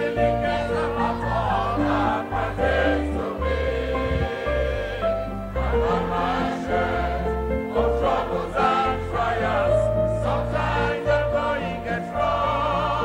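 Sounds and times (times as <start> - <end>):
choir singing gospel: 0.0 - 13.0.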